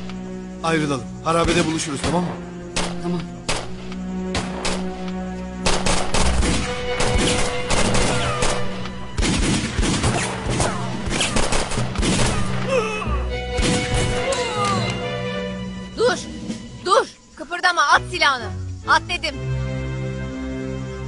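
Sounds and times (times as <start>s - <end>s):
dramatic music score: 0.0s - 21.0s
rapid gunfire: 5.6s - 12.6s.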